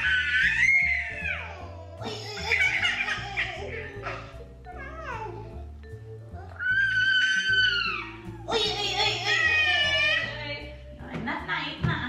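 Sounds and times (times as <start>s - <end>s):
baby squealing: 0.0s - 5.6s, 6.3s - 10.4s
background music: 0.0s - 12.0s.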